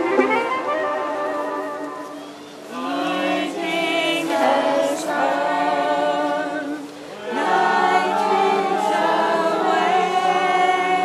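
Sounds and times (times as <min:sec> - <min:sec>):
group singing without instruments: 0:02.2 - 0:11.0.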